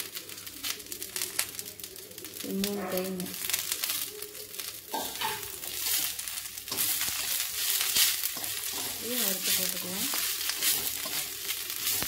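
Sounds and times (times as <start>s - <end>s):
leaves frying with crackling hiss: 0.0s - 12.0s.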